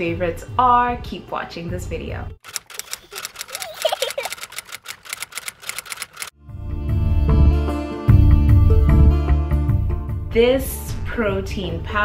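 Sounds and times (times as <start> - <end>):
typewriter key clicks: 2.4 - 6.3.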